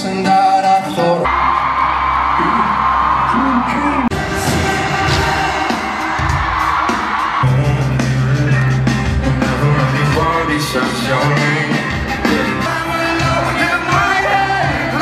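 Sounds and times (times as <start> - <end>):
live concert music with singing: 0.0 - 15.0.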